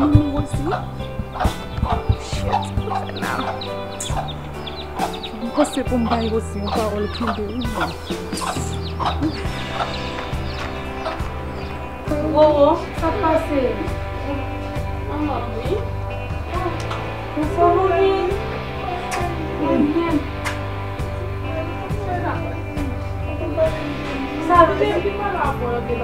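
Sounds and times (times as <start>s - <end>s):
chickens clucking: 0.0s - 11.9s
music with bass line: 0.0s - 26.0s.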